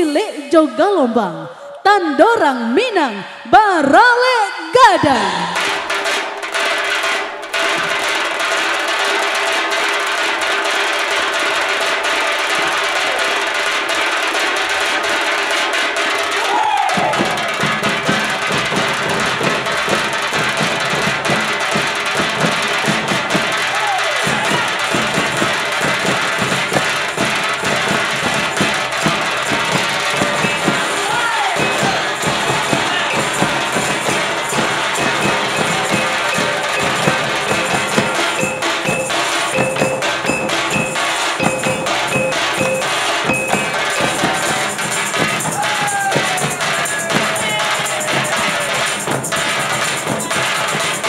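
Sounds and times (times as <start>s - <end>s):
barrel drums fast rhythm: 4.1s - 51.0s
hand cymbals: 5.1s - 51.0s
steady held tones: 24.2s - 49.4s.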